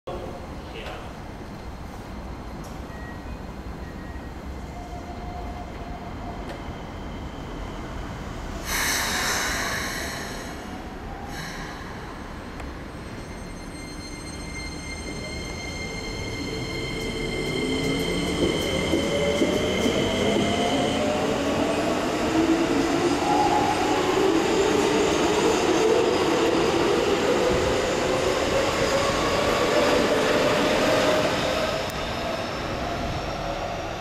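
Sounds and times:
train air hiss: 8.5 - 12.5.

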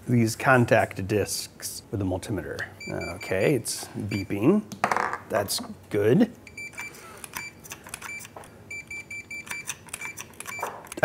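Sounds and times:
multimeter continuity beeps: 2.8 - 3.5, 4.1 - 4.5, 6.4 - 10.8.

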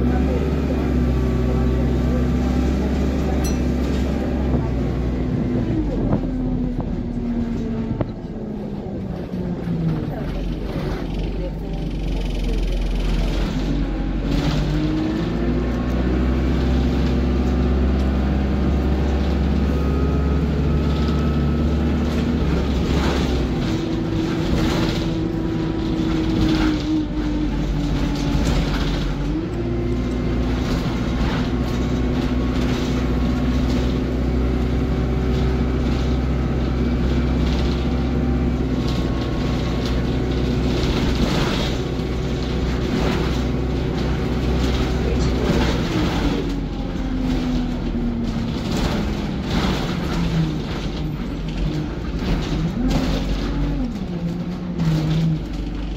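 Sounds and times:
bus diesel engine and gearbox: 0.0 - 55.9.

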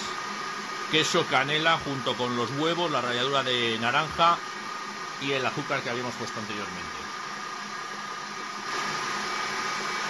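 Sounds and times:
stand mixer motor whirring: 0.0 - 10.0.

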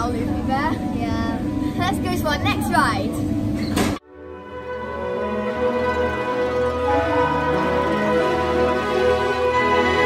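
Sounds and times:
girls talking: 0.0 - 3.2.

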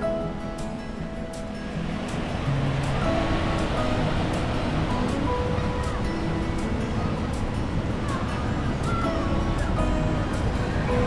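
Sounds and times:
background music with held notes: 0.0 - 11.0
small waves breaking on shore: 0.9 - 11.0.

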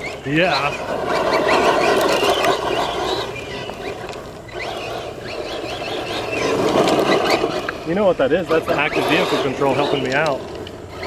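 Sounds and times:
electric drivetrain whine: 0.0 - 11.0
tyres scrabbling through dirt: 0.0 - 11.0.

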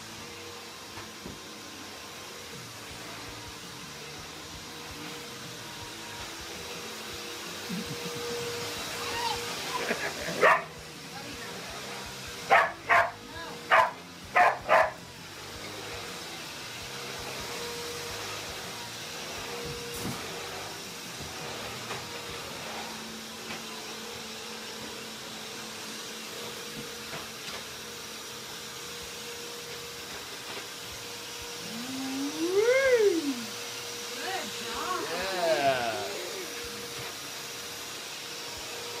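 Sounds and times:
dog barking: 10.4 - 10.7, 12.5 - 15.0.

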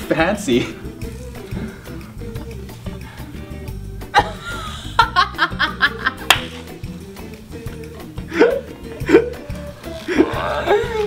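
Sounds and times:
background music with beat: 0.0 - 11.0
sharp snap: 6.2 - 6.8.

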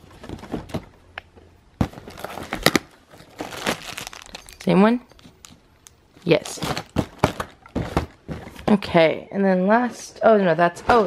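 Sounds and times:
plastic bag crinkling: 1.9 - 8.2
cardboard tearing open: 2.0 - 4.4.

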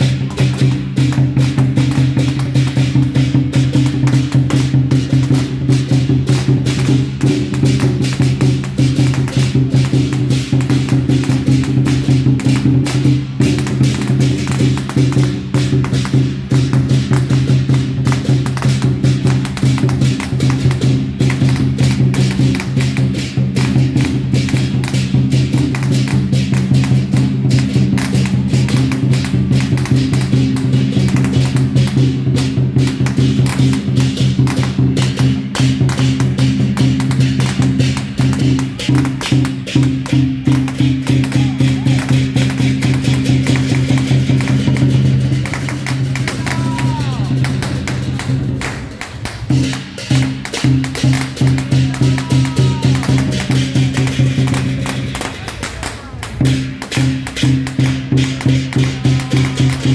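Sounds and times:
rapid drum and wood-block strikes: 0.0 - 59.9.

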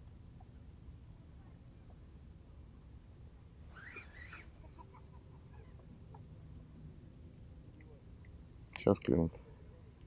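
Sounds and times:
faint bird chirps: 3.7 - 5.8
distant bird call: 3.7 - 5.9.

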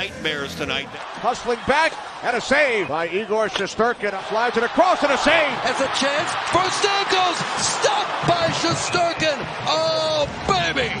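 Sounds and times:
arena crowd din: 0.0 - 11.0
excited sports commentary: 0.0 - 11.0.

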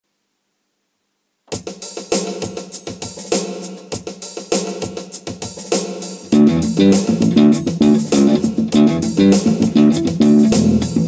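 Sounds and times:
drum kit beat: 1.5 - 11.0.

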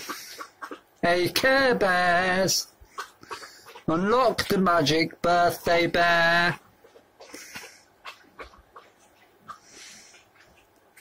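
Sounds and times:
soft breathy sniff: 2.8 - 3.9, 7.2 - 8.0, 9.5 - 10.5.

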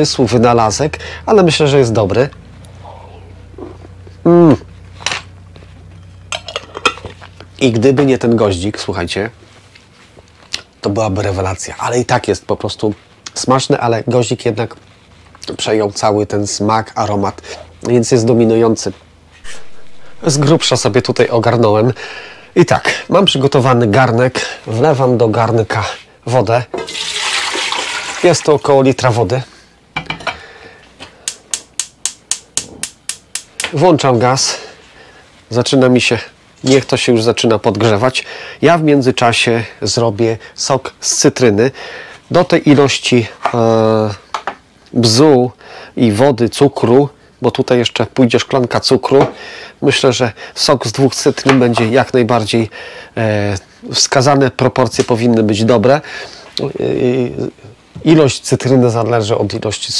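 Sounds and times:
metal spoon clinking glass jar: 6.3 - 7.0.

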